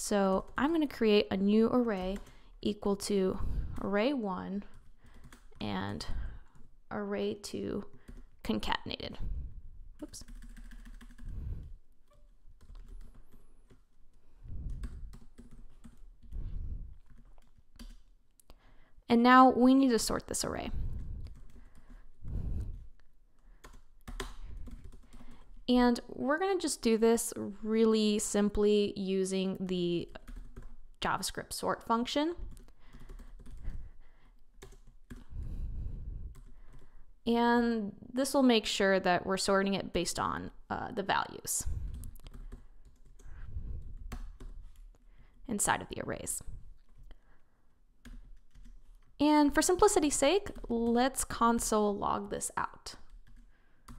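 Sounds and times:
computer keyboard typing: 0.1 - 3.1, 4.6 - 6.7, 7.8 - 8.6, 10.0 - 18.2, 20.4 - 22.1, 23.4 - 25.6, 30.0 - 30.8, 32.4 - 33.9, 34.5 - 35.4, 36.3 - 36.9, 41.8 - 45.4, 48.0 - 51.4, 52.9 - 53.9.

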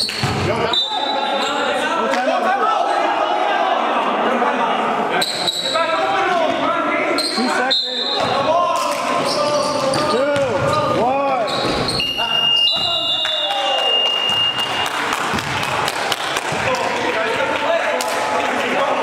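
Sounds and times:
players' voices: 0.0 - 19.0
basketball bouncing on gym floor: 9.9 - 11.0.

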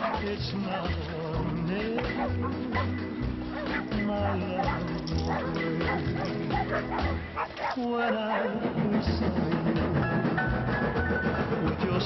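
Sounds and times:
dog barking and yipping: 0.0 - 1.1, 2.0 - 8.6
background music with low beat: 0.0 - 12.0.

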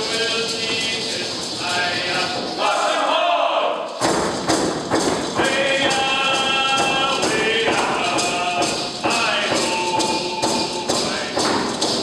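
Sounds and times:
group singing: 0.0 - 4.0, 5.3 - 11.6
frame drums beating: 0.0 - 12.0.

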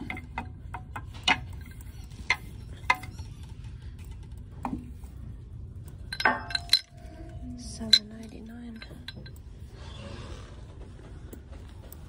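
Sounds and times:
faint background music: 1.0 - 12.0
decor pieces clinking on shelf: 6.1 - 9.4.

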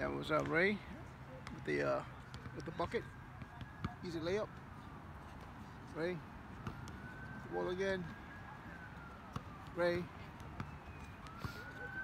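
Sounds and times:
distant siren wailing: 2.4 - 12.0.

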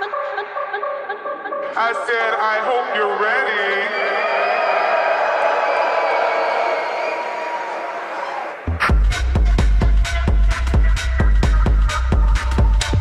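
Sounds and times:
techno kick drum and beat: 8.7 - 13.0.

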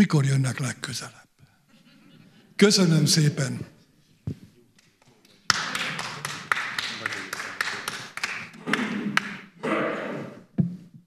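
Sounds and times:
audience laughter and voices: 1.7 - 2.6
audience applause: 5.4 - 9.6.

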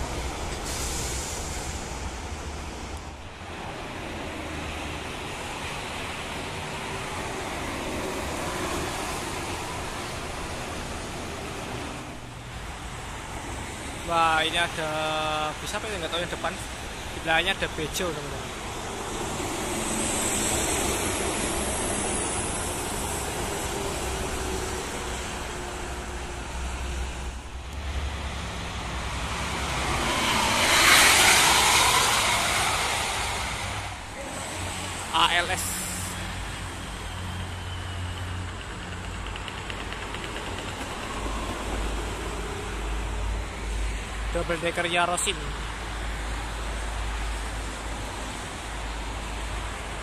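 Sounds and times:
bus passing at speed: 0.0 - 50.0
highway traffic: 0.0 - 50.0.

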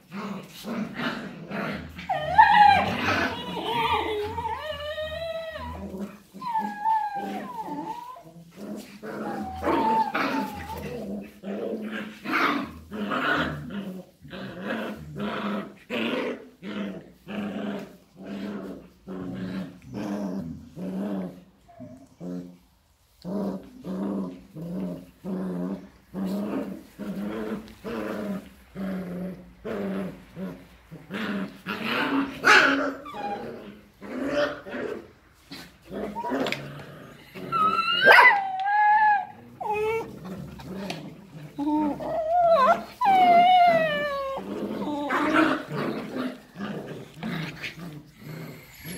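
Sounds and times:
dogs growling: 0.0 - 22.6, 23.2 - 48.9
dogs whining: 2.0 - 8.4, 9.0 - 11.1, 32.5 - 33.8, 36.0 - 40.6, 41.5 - 46.0, 48.0 - 48.9.

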